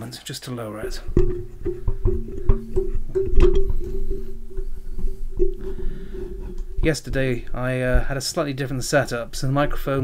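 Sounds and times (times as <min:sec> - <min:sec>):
microphone handling knocks and rattles: 0:00.8 - 0:10.0
steady low ringing tone: 0:00.9 - 0:10.0.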